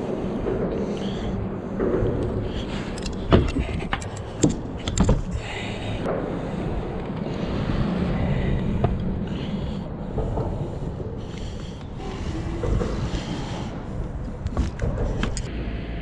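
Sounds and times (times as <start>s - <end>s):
wind rumbling on microphone: 0.0s - 16.0s.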